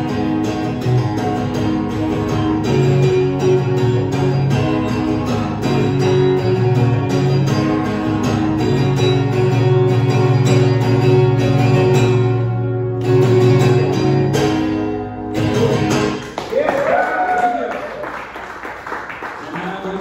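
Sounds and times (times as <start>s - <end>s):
acoustic guitar strumming: 0.0s - 16.4s.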